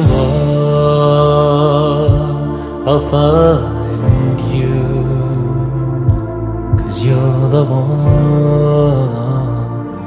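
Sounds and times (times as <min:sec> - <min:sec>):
low accompaniment: 0:00.0 - 0:10.0
man singing wordless note: 0:00.0 - 0:10.0.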